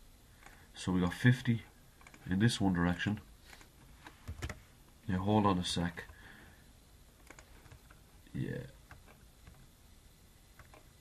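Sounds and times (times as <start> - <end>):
computer keyboard clicks: 2.0 - 2.2, 7.2 - 8.0.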